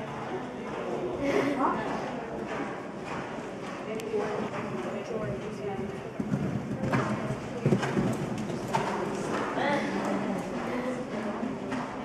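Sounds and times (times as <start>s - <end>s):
horse hooves thudding: 1.9s - 9.6s.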